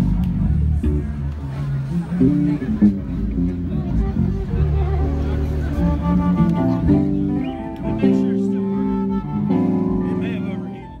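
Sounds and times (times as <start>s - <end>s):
live band playing chords: 0.0s - 11.0s.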